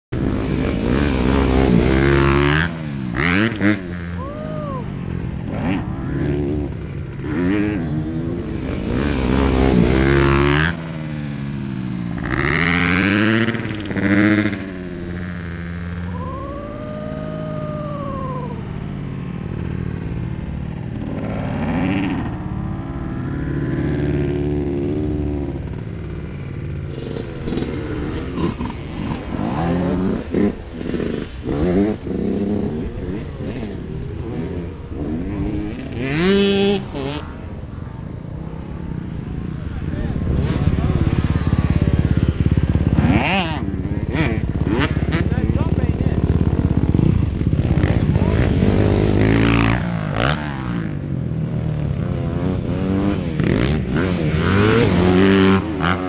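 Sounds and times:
dirt bike engines revving: 0:00.2 - 0:56.0.

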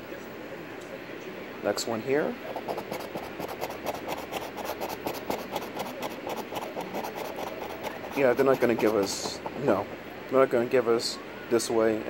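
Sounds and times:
coin scraping lottery ticket: 0:02.5 - 0:09.6.

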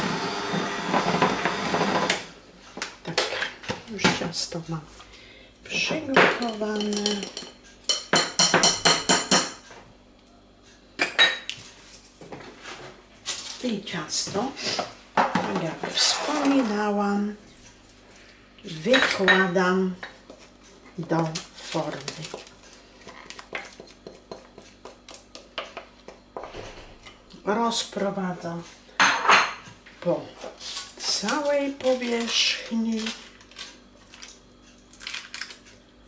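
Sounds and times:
beaters scraping bowl: 0:15.5 - 0:17.0.

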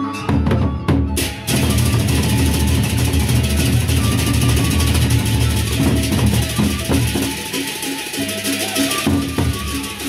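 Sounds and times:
barrel drums beaten fast: 0:00.4 - 0:10.0
hand cymbals crashing: 0:01.2 - 0:10.0.

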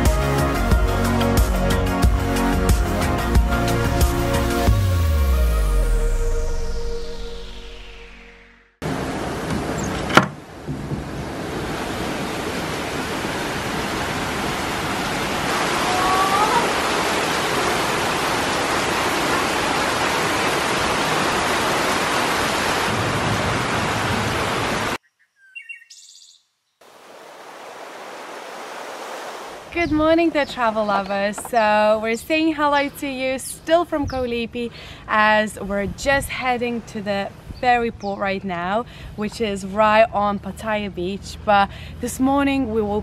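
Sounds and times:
heavy rain pouring: 0:08.8 - 0:25.0
surf washing: 0:08.8 - 0:25.0
bird call: 0:25.0 - 0:26.5.

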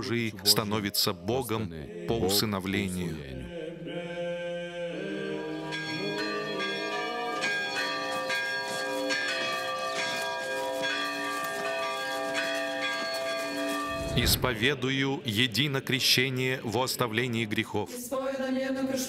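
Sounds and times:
church bells pealing: 0:05.2 - 0:14.9.

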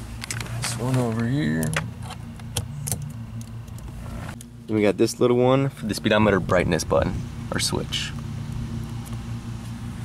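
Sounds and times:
low hum inside car cabin: 0:00.0 - 0:10.0.

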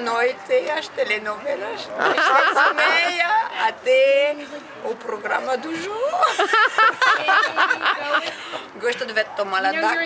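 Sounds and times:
woman laughing: 0:06.1 - 0:08.3
woman speaking: 0:07.1 - 0:10.0.

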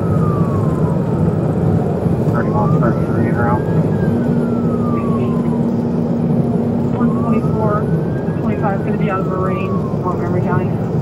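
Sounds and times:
police siren wailing: 0:00.0 - 0:11.0
road and engine noise: 0:00.0 - 0:11.0.

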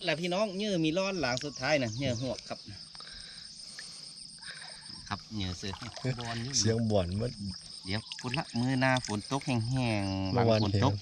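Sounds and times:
insects chirring: 0:00.0 - 0:11.0
rapidly pulsing insect chirr: 0:00.0 - 0:11.0.

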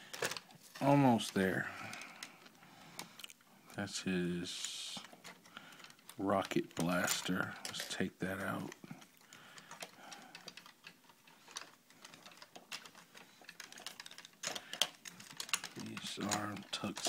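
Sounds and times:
plastic toy parts clicking: 0:05.0 - 0:17.0.

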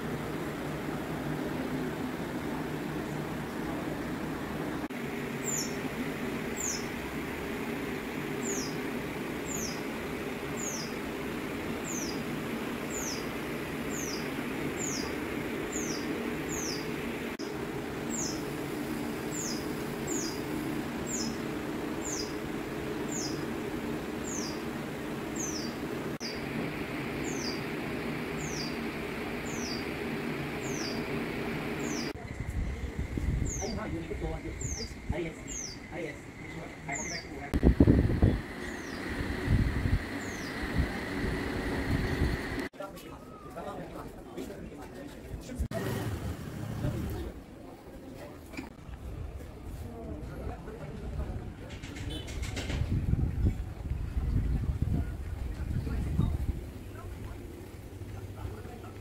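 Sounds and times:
bird chirping: 0:05.4 - 0:05.8, 0:06.6 - 0:06.9, 0:08.4 - 0:08.8, 0:09.4 - 0:09.9, 0:10.6 - 0:11.0, 0:11.8 - 0:12.2, 0:12.9 - 0:17.0, 0:18.1 - 0:18.4, 0:19.3 - 0:21.4, 0:22.0 - 0:22.4, 0:23.1 - 0:23.5, 0:24.2 - 0:24.7, 0:25.4 - 0:26.4, 0:27.2 - 0:27.7, 0:28.4 - 0:30.0, 0:30.6 - 0:37.5, 0:38.5 - 0:39.2, 0:40.1 - 0:40.8.

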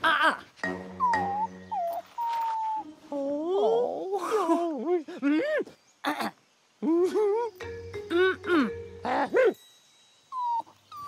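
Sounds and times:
music score: 0:00.6 - 0:02.0
cartoon puppy whining: 0:01.0 - 0:02.8.

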